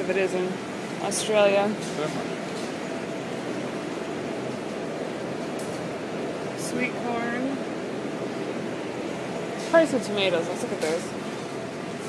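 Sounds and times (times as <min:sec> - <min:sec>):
refrigerator and air conditioning hum: 0:00.0 - 0:12.0.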